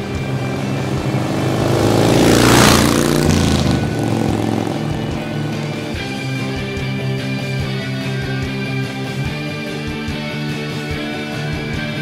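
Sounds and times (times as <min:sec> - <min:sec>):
motorcycle passing by: 0:00.0 - 0:07.8.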